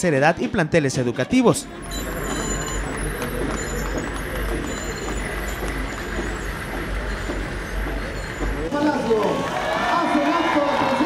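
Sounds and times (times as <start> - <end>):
truck engines rumbling: 1.4 - 11.0.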